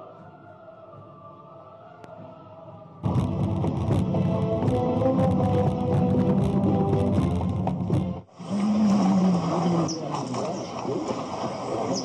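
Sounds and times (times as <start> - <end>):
film soundtrack music: 0.0 - 12.0.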